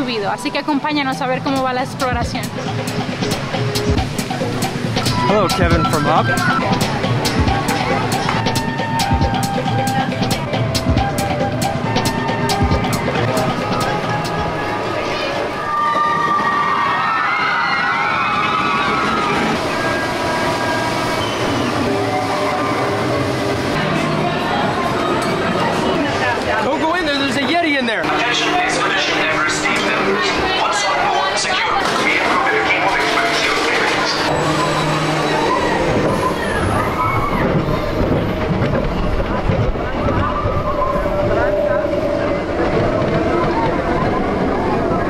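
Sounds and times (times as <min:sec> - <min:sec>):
roller coaster rumbling on track: 0:00.0 - 0:45.0
voices: 0:00.0 - 0:45.0
riders screaming: 0:15.5 - 0:23.4, 0:35.2 - 0:38.0.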